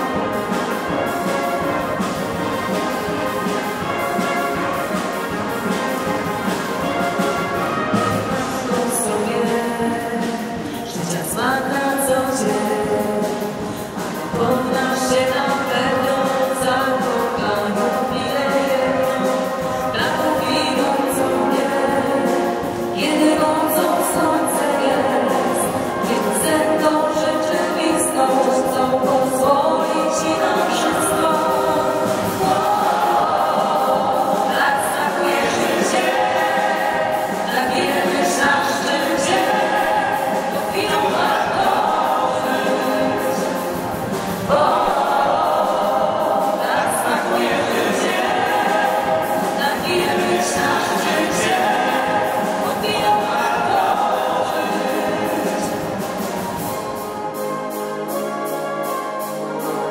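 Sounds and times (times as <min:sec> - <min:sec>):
adult voices singing on microphones: 0:00.0 - 0:01.2, 0:08.2 - 0:57.2
children's choir singing: 0:00.0 - 0:59.9.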